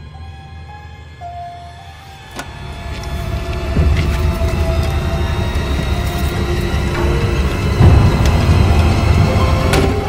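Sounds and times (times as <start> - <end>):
low droning music: 0.0 - 10.0.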